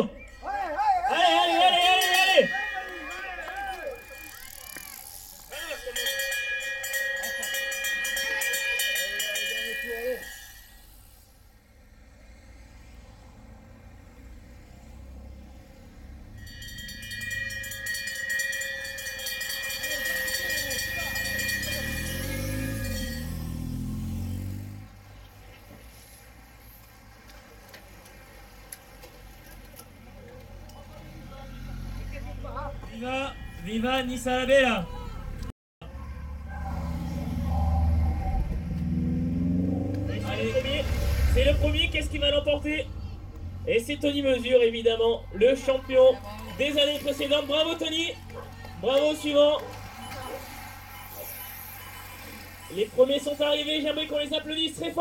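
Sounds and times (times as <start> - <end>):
hand bell rung rapidly: 1.6 - 11.0, 16.4 - 24.2, 49.8 - 53.9
motor vehicle passing: 10.7 - 17.9, 18.9 - 33.0, 33.6 - 55.0.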